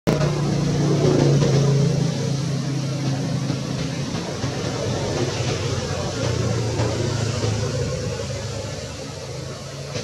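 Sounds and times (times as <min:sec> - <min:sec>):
vehicle engine humming: 0:00.1 - 0:10.0.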